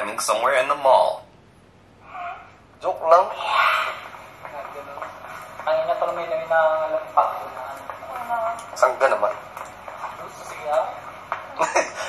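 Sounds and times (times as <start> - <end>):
recording background noise: 0.0 - 12.0
man speaking: 2.8 - 4.0.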